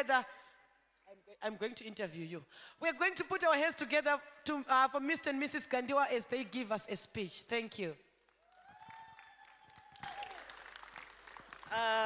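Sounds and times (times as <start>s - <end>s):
scattered hand-clapping: 8.3s - 11.8s.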